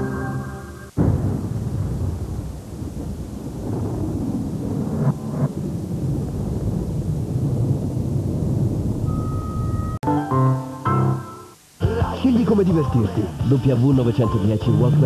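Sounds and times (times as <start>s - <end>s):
deep thunder-like rumble: 1.0s - 10.0s.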